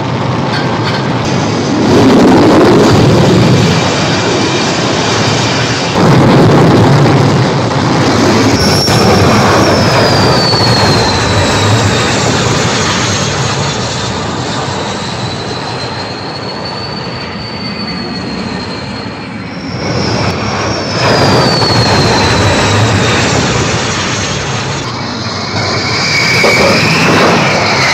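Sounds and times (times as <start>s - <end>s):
jet engine roar: 0.0s - 27.9s
high whine dropping in pitch: 1.2s - 27.9s.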